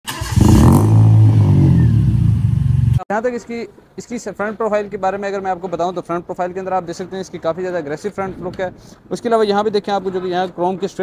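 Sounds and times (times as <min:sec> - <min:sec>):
deep vehicle engine note: 0:00.4 - 0:03.0.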